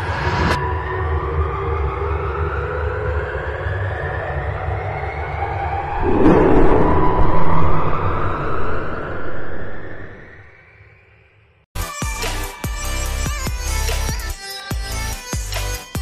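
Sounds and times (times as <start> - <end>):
rising pitched tone: 3.8 - 11.3
low rumble: 5.6 - 10.6.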